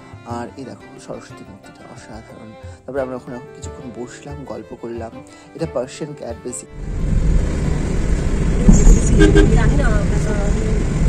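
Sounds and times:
car engine and tyre rumble: 6.7 - 11.0
car bump: 7.5 - 10.2.

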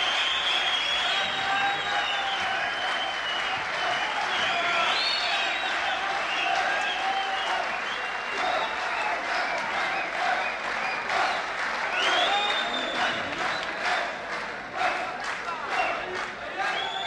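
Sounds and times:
audience applauding: 0.0 - 17.0.

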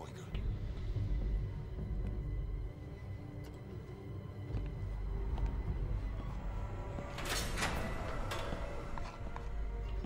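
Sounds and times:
low rumble: 4.2 - 10.0.

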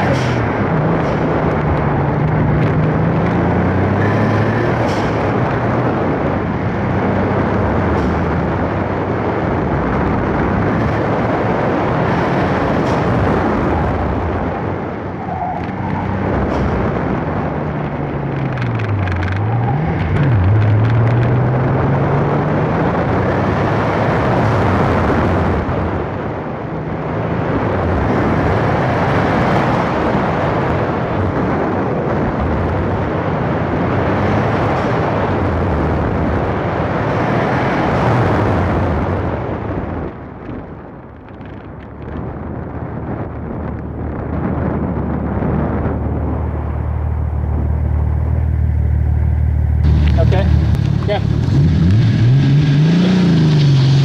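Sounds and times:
car engine driven hard: 0.0 - 54.0
wind rush on microphone: 0.0 - 54.0.

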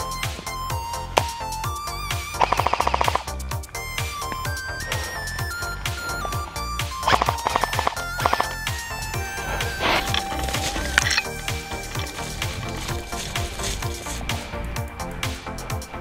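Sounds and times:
fast bass drum beat: 0.0 - 16.0
synth melody of held notes: 0.0 - 16.0.

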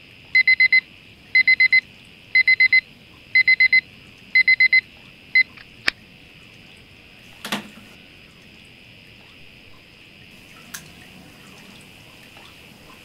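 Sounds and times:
digital alarm clock beeping: 0.4 - 0.8, 1.4 - 1.8, 2.4 - 2.8, 3.4 - 3.8, 4.4 - 4.8.

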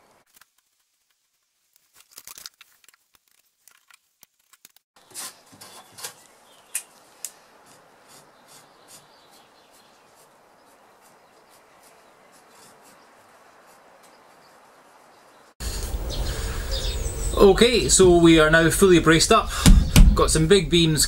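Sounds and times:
marker pen scratching on wood: 7.6 - 14.4.

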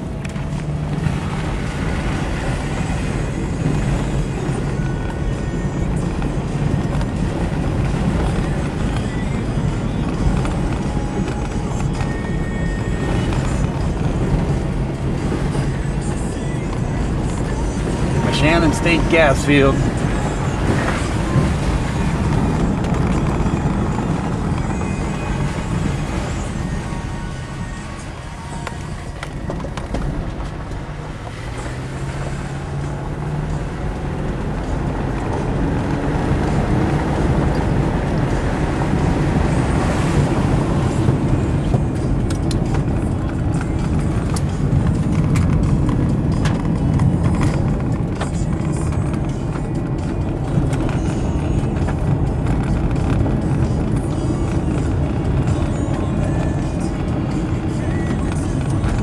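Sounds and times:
car cabin road noise: 0.0 - 59.0
car engine: 0.0 - 59.0.

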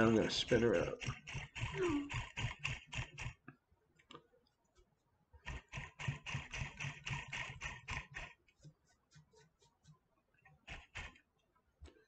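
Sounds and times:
rapid even ticking of spinner: 0.0 - 3.5, 5.4 - 11.4.

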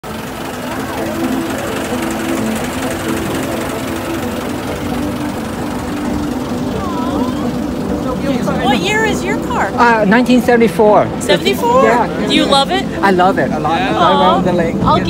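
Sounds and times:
car engine running: 0.0 - 15.0
faint voices: 0.0 - 15.0.

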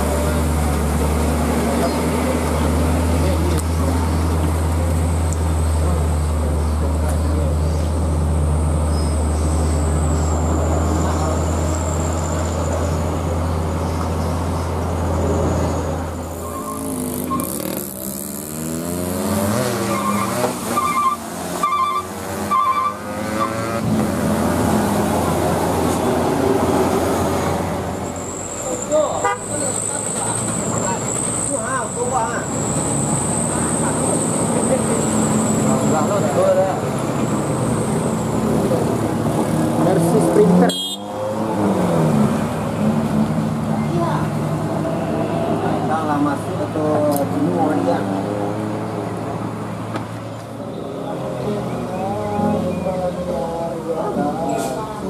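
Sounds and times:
truck engines pulling uphill: 0.0 - 55.0
background voices: 50.8 - 55.0.

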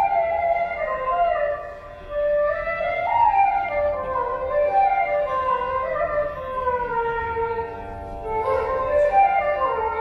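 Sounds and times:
flute note sliding downward: 0.0 - 7.6, 8.2 - 10.0.

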